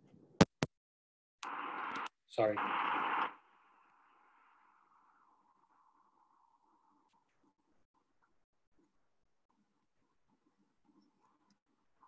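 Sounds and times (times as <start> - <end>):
burst of noise: 1.4 - 5.0.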